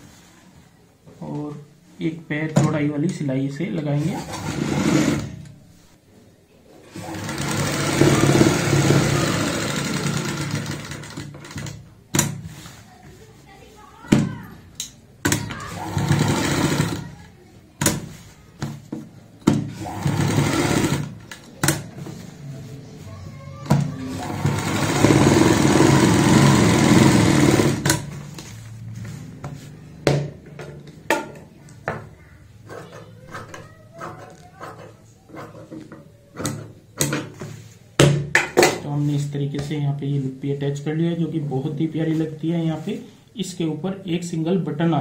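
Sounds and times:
sewing machine stitching: 0:04.0 - 0:05.4, 0:06.9 - 0:11.8, 0:15.3 - 0:17.2, 0:19.6 - 0:21.9, 0:24.0 - 0:28.3.

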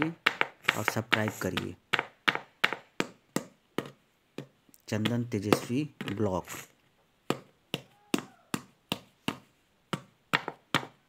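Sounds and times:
sharp taps on hard surface: 0:00.0 - 0:06.4.

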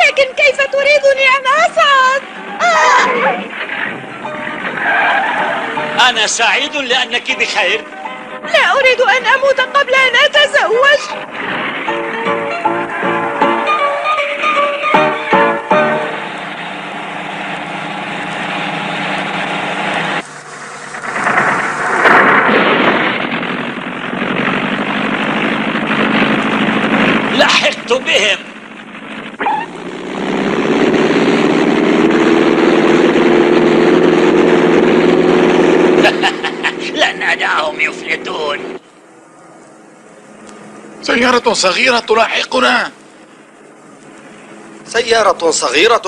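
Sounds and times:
car engines running: 0:00.0 - 0:46.0
voice exclamation: 0:02.6 - 0:03.5
car rushing past: 0:10.8 - 0:39.0.

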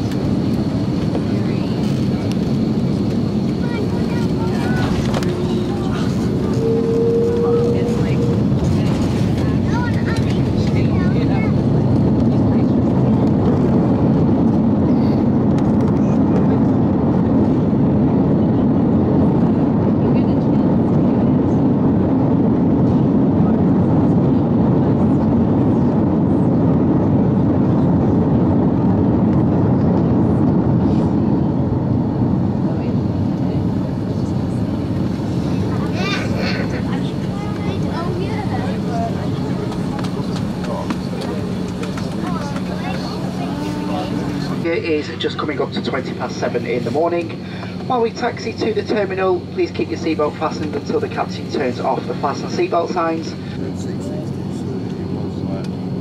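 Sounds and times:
airliner engines and wheels rumbling: 0:00.0 - 0:56.0.

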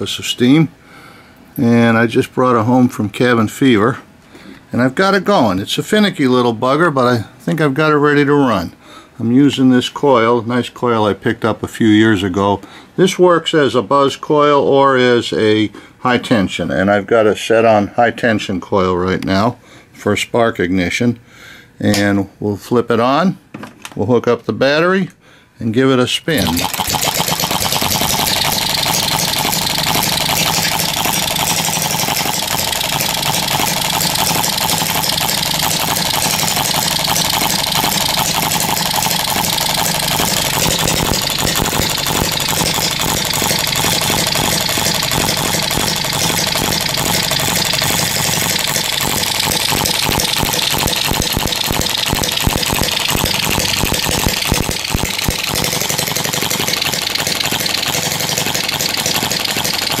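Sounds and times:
small gas engine firing: 0:26.4 - 1:00.0
valve gear clatter: 0:26.4 - 1:00.0.

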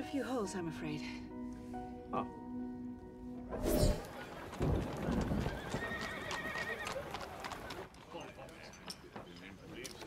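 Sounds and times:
horse hooves clip-clopping: 0:04.0 - 0:10.0
horse whinny: 0:05.4 - 0:07.0.

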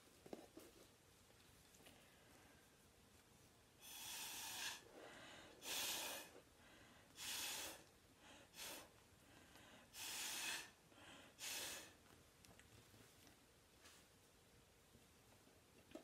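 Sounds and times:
breathy puffs through a straw: 0:09.9 - 0:12.0.

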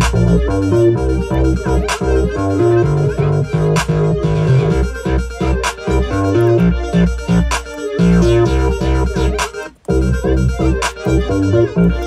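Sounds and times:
synth and keyboard melody: 0:00.0 - 0:12.0.

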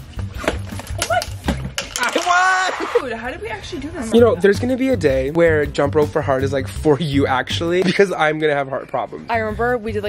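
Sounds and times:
young people cheering: 0:02.1 - 0:03.0.

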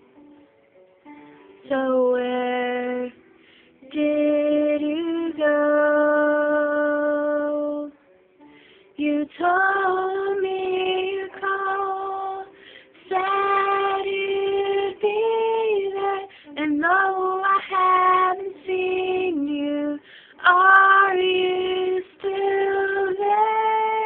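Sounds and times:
girl singing: 0:03.8 - 0:08.0, 0:09.0 - 0:24.0.

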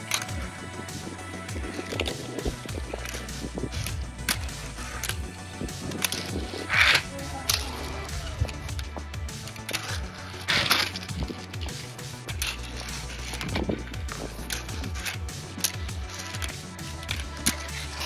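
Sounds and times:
background music: 0:00.0 - 0:18.0
small wheels rolling on concrete: 0:00.0 - 0:18.0
deck scraping on metal rail: 0:01.6 - 0:08.8, 0:09.4 - 0:18.0.

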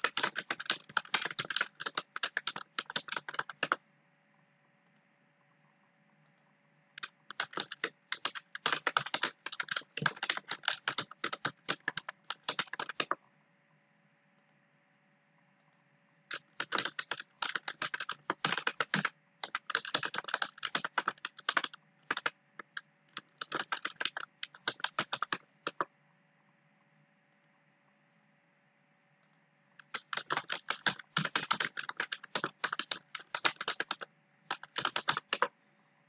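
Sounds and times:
computer keyboard typing: 0:00.0 - 0:03.8, 0:07.0 - 0:13.2, 0:16.3 - 0:25.9, 0:29.8 - 0:35.6.

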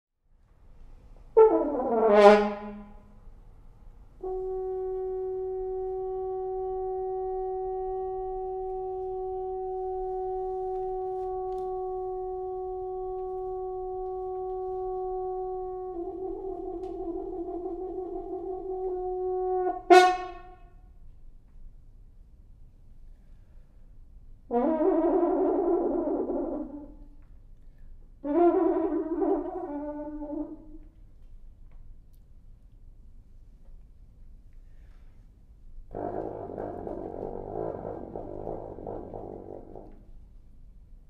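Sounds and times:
french horn playing: 0:01.3 - 0:03.2, 0:04.2 - 0:20.7, 0:35.9 - 0:40.2.

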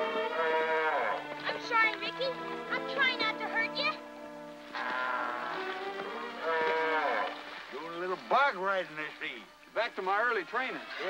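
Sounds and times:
orchestral film score: 0:00.0 - 0:09.4
voice-like calls: 0:04.7 - 0:07.8.

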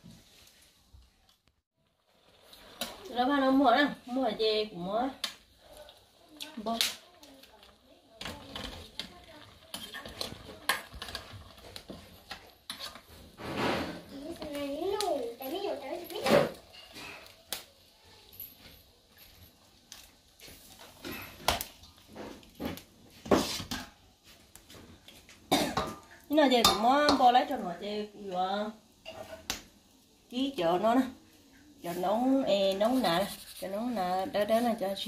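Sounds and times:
metal cookware clattering: 0:15.4 - 0:17.3, 0:29.0 - 0:29.5.

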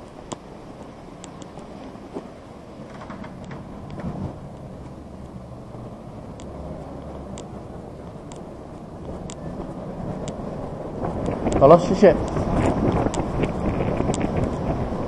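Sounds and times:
low rumbling walking noise: 0:00.0 - 0:15.0
faint sharp clicks: 0:06.3 - 0:09.5.

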